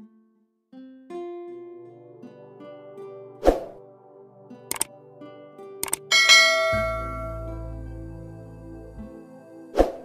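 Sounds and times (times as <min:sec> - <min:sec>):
soft background music: 0:01.1 - 0:10.0
mouse clicks: 0:05.8 - 0:06.1
bright bell-like chime: 0:06.1 - 0:07.7.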